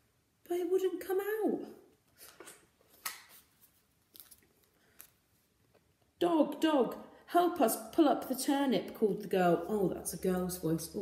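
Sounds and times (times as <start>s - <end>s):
paper pages rustling: 2.2s - 5.5s.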